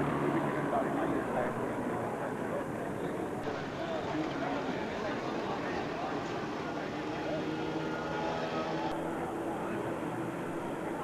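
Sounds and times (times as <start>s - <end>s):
crowd chatter: 0.0s - 11.0s
engine hum: 0.0s - 11.0s.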